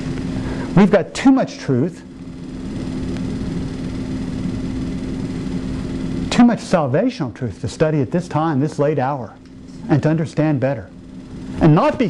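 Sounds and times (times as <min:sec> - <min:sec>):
low machinery rumble: 0:00.0 - 0:12.0.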